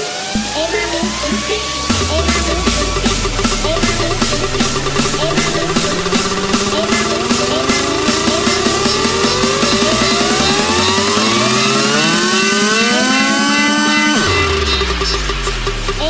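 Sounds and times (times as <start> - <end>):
synth riser: 0.0 - 16.0
bass: 0.2 - 16.0
fast drum roll: 0.4 - 16.0.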